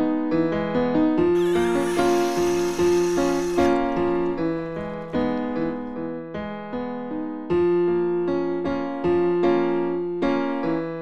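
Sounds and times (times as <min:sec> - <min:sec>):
loud hissing rush: 0:01.4 - 0:05.7
slow piano chords: 0:01.4 - 0:06.2.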